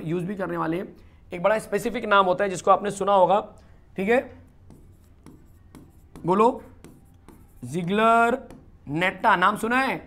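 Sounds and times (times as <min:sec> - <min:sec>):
person speaking: 0:00.0 - 0:10.0.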